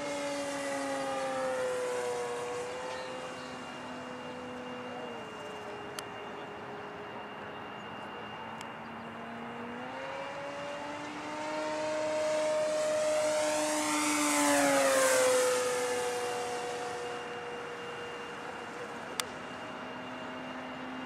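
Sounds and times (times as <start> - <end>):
model plane motor whining: 0.0 - 21.0.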